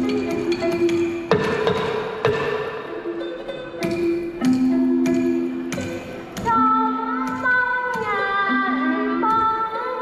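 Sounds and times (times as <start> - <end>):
bamboo clappers clacking: 0.0 - 2.4.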